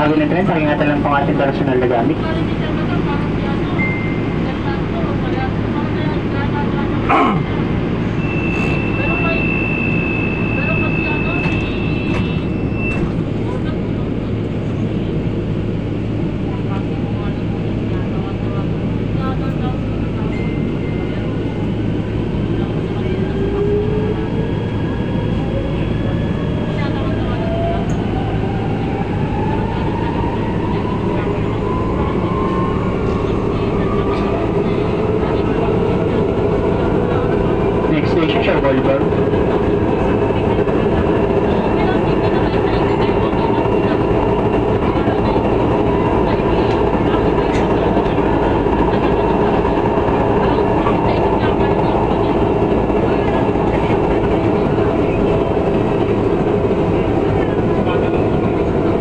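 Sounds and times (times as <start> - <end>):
rumble of wheels on rail: 0.0 - 59.0
train motor whine: 8.0 - 13.4.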